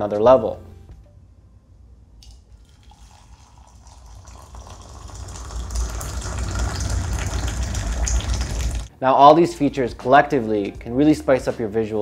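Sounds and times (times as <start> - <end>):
water pouring into a mug: 2.2 - 8.9.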